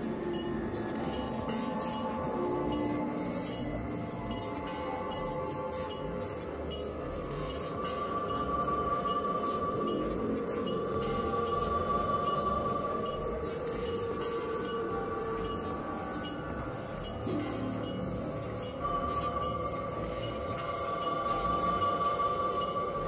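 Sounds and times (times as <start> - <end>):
low drone: 0.0 - 23.0.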